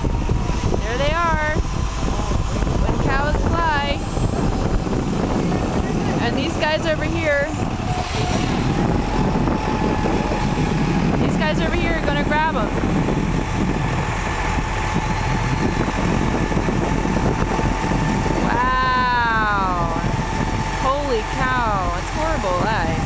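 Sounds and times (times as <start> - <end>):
diesel engine running: 0.0 - 23.0.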